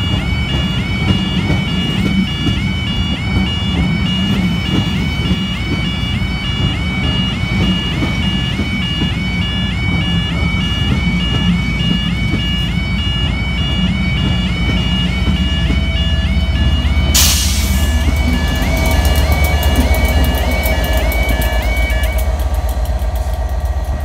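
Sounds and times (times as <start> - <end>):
level crossing alarm: 0.0 - 24.0
train coaches rumbling on rails: 0.0 - 24.0.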